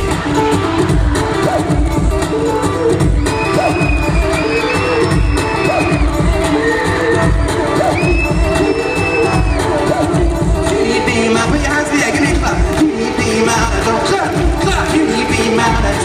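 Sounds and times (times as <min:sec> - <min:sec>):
crowd cheering: 0:00.0 - 0:10.2
loud amplified live music: 0:00.0 - 0:16.0.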